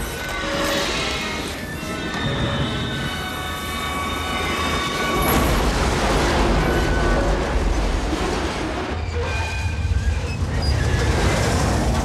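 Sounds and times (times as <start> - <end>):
train rumbling: 0.0 - 12.0
heavy grinding crash: 4.7 - 12.0.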